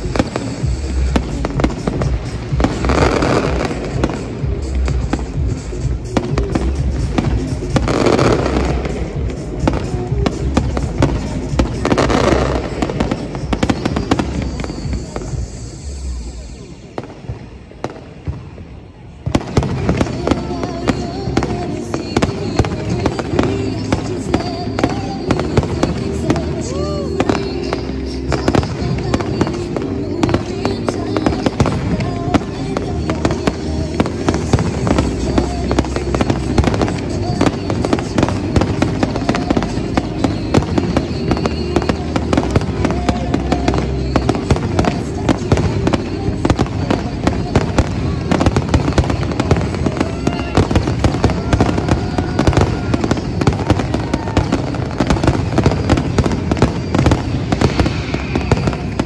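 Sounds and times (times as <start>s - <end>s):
music with held tones: 0.0s - 18.3s
fireworks bangs and crackles: 0.0s - 59.0s.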